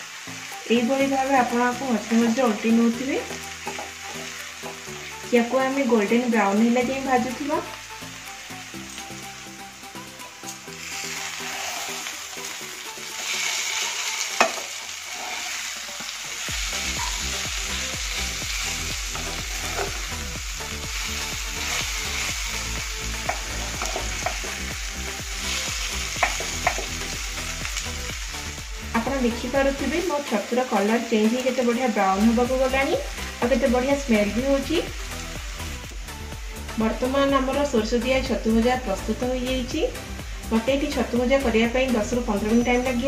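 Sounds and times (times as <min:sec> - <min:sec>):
mushrooms sizzling in a pan: 0:00.0 - 0:43.0
spatula scraping a pan: 0:11.2 - 0:12.1, 0:13.2 - 0:16.1, 0:23.3 - 0:24.5.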